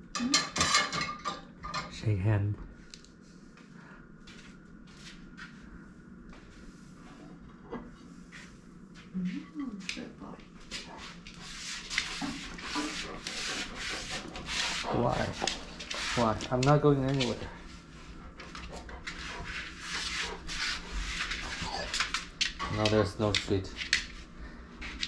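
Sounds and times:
rubbing and rustling: 0:10.5 - 0:25.0.

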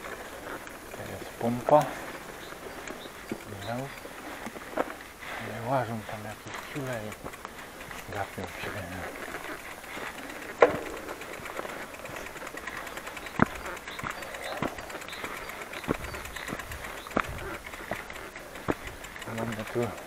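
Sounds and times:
bicycle knocks and rattles: 0:00.0 - 0:20.0
bicycle tyre and wind noise: 0:00.0 - 0:20.0.

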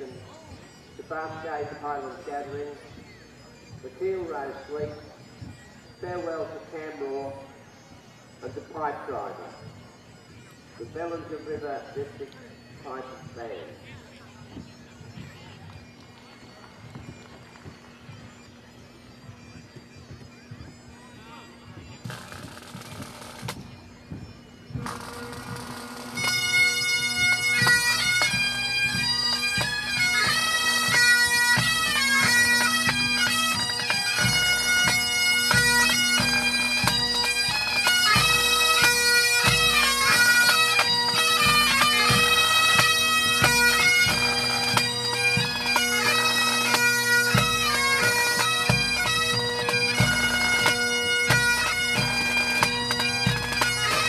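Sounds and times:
bagpipe chanter melody: 0:00.0 - 0:54.0
bagpipe drone: 0:00.0 - 0:54.0.

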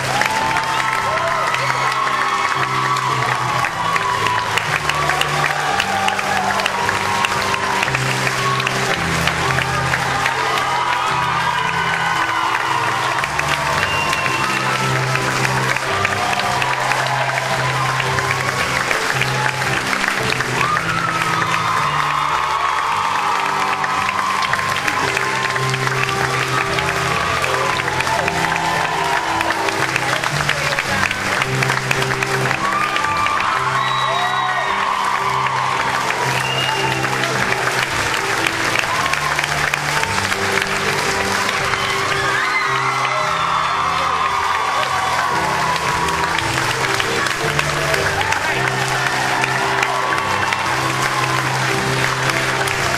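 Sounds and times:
audience applause: 0:00.0 - 0:52.9.

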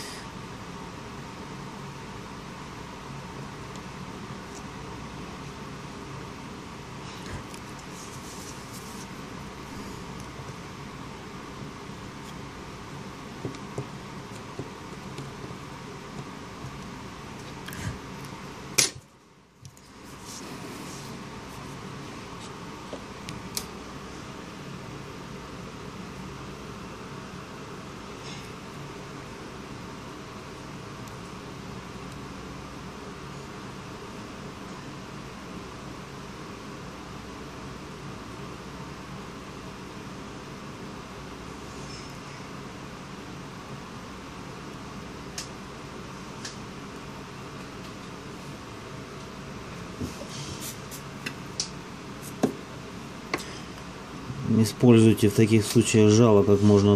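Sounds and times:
steady fan hum: 0:00.0 - 0:56.9.

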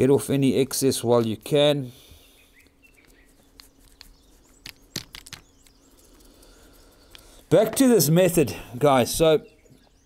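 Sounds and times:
faint bird chirps: 0:02.0 - 0:07.5, 0:08.6 - 0:10.0.

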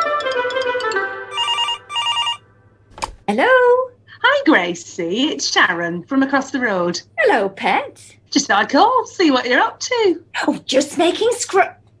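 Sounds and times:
plucked string music cue: 0:00.0 - 0:02.3
telephone ringing: 0:00.0 - 0:02.6.

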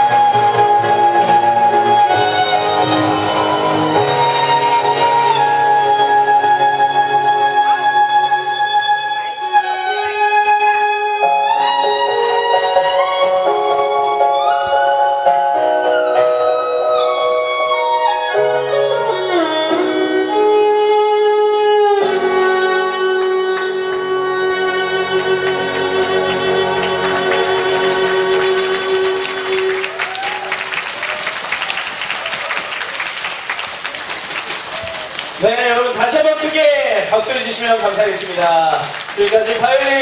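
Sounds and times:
violin playing slow melody: 0:00.0 - 0:30.2.

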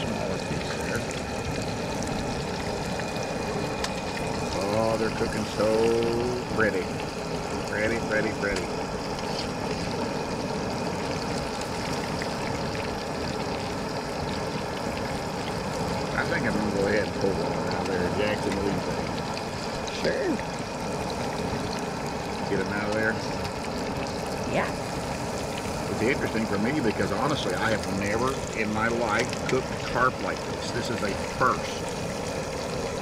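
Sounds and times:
fish deep-frying in oil: 0:00.0 - 0:33.0.

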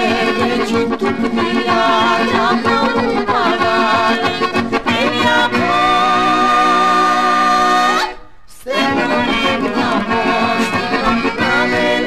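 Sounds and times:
lively instrumental folk music: 0:00.0 - 0:12.0.

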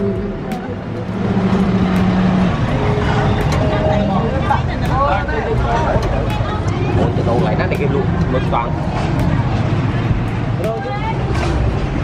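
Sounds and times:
vehicle engine rumbling: 0:00.0 - 0:12.0
people talking: 0:02.7 - 0:09.4, 0:10.6 - 0:11.4.

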